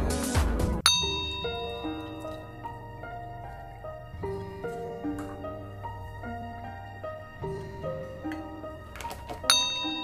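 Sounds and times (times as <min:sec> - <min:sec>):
background music: 0:00.0 - 0:10.0
gentle music: 0:00.0 - 0:10.0
bright ding: 0:00.9 - 0:02.8, 0:09.5 - 0:10.0.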